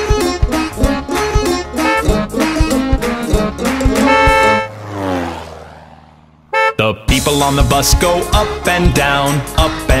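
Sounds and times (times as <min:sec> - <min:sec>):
cartoon car horn honk: 0:01.7 - 0:02.6, 0:03.8 - 0:04.8, 0:06.5 - 0:07.2.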